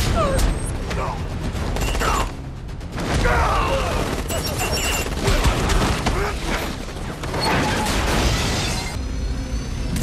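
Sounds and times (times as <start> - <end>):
music: 0.0 - 8.3, 8.9 - 10.0.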